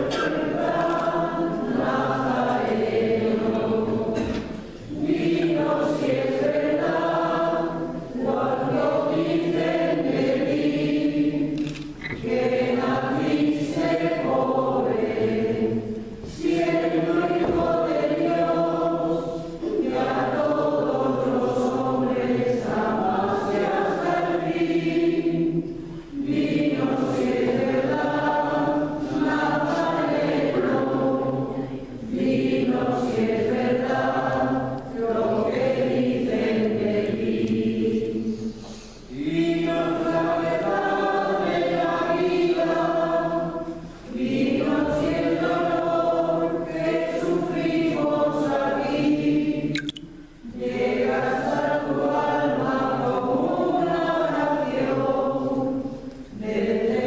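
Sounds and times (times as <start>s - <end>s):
choir singing: 0.0s - 57.0s.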